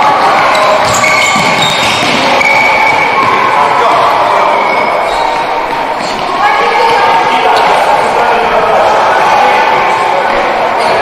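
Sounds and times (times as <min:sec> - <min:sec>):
people calling out: 0:00.0 - 0:11.0.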